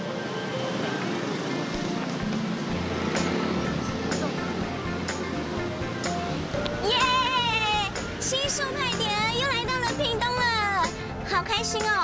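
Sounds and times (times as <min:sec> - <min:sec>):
motor scooters riding past: 0:00.0 - 0:10.0
background music: 0:00.0 - 0:12.0
street traffic noise: 0:00.0 - 0:12.0.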